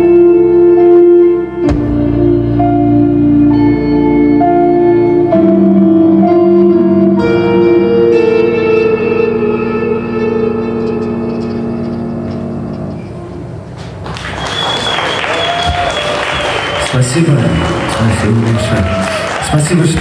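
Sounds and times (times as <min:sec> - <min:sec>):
electric guitar and keyboard chord: 0:00.0 - 0:13.6
audience applause: 0:13.8 - 0:20.0
long high whistle: 0:14.2 - 0:17.8.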